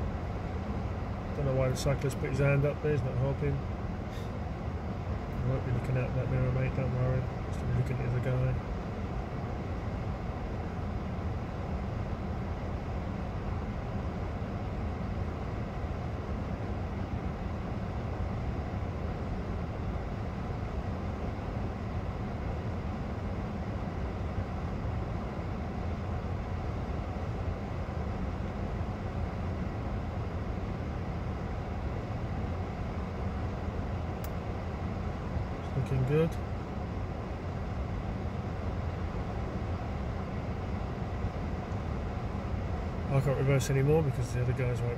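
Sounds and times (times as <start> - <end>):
idling vehicle engines rumble: 0.0 - 44.9
faint click: 34.2 - 34.4.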